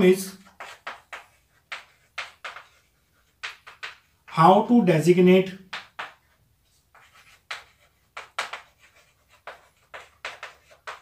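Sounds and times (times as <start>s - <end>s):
chalk scratching on chalkboard: 0.0s - 4.4s, 5.7s - 11.0s.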